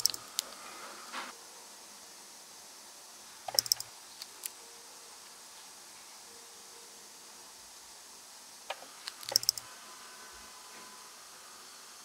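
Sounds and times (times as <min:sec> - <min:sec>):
metallic clicks of drill bit: 0:00.0 - 0:00.5, 0:03.5 - 0:04.5, 0:09.0 - 0:09.7.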